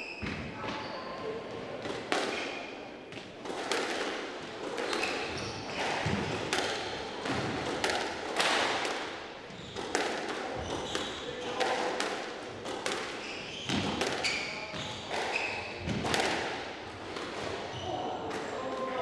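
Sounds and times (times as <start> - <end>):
squash ball hitting racket and walls: 0.1 - 19.0.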